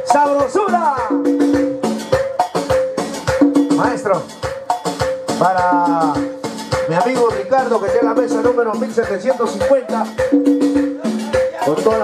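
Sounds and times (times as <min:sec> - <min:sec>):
upbeat band music with percussion: 0:00.0 - 0:12.0.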